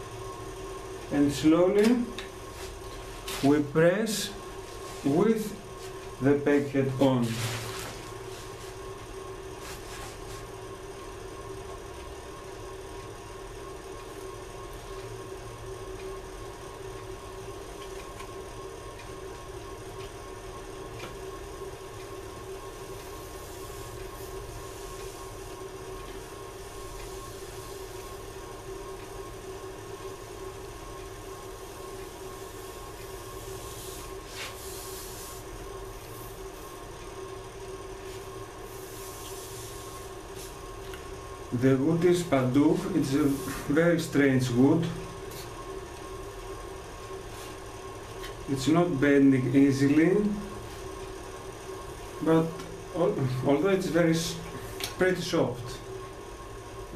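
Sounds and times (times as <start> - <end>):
electric hum of bending iron: 0.0 - 56.9.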